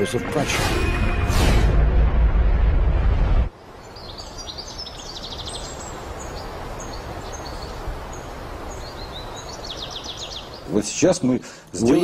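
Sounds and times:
birds chirping: 3.5s - 12.0s
outdoor background hiss: 3.5s - 12.0s.

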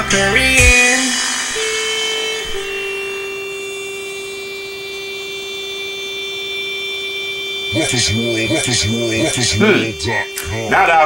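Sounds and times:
faint high whine: 0.0s - 11.0s
sustained electronic tone: 0.0s - 11.0s.

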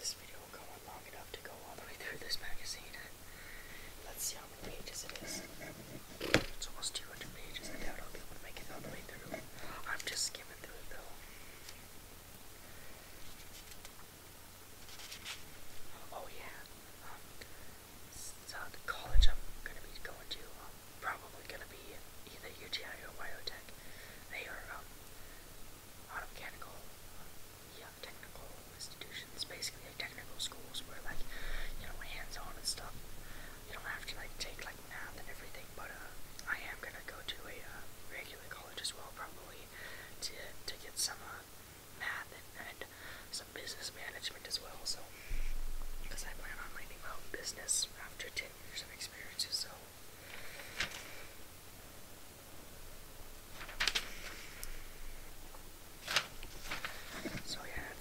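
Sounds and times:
person whispering: 0.0s - 3.2s, 4.0s - 11.2s, 15.9s - 17.4s, 18.1s - 24.9s, 26.1s - 26.9s, 27.7s - 33.0s, 33.6s - 45.1s, 46.0s - 49.9s, 56.8s - 58.0s.

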